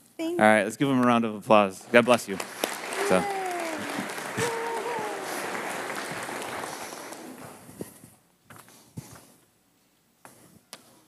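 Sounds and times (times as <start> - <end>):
congregation applauding: 1.9 - 7.8
voices calling out: 2.8 - 7.2.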